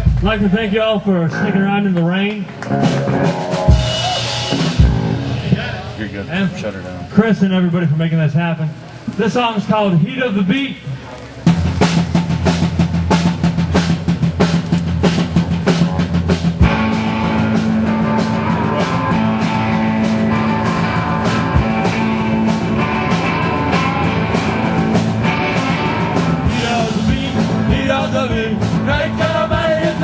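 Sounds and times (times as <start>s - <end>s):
drum kit steady rhythm: 0.0s - 1.1s, 2.4s - 6.8s, 11.4s - 30.0s
live rock band: 0.0s - 7.8s, 10.4s - 30.0s.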